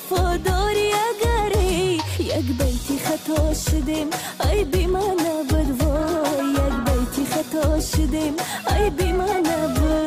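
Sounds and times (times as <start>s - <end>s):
song with sung melody and deep beat: 0.0s - 10.0s.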